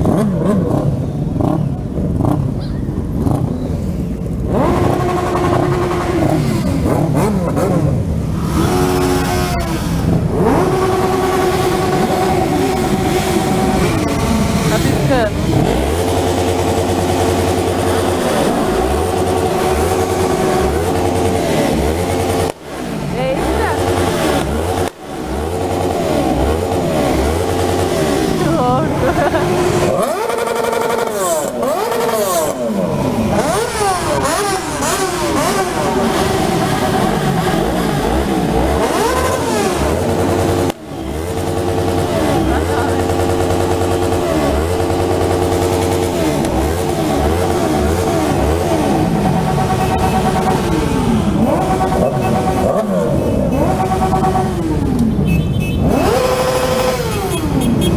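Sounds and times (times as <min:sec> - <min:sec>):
motorcycles idling and revving: 0:00.0 - 0:57.9
voices: 0:08.6 - 0:16.0, 0:22.9 - 0:31.3, 0:41.3 - 0:44.6.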